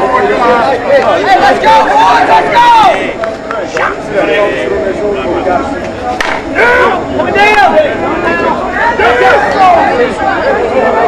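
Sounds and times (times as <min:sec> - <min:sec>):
bat striking ball: 0:06.2 - 0:06.5
men shouting: 0:06.4 - 0:11.0.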